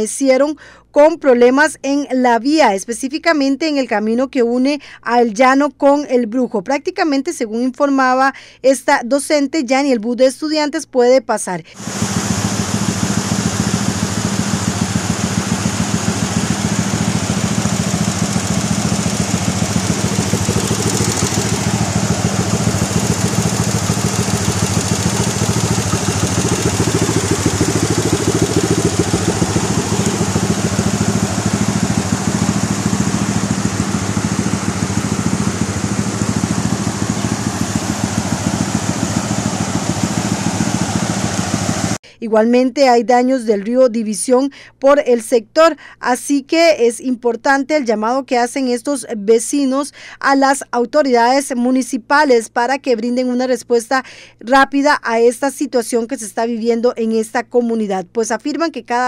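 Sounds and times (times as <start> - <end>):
motorcycle engine running: 11.8 - 42.0
steady rushing noise: 11.8 - 42.0.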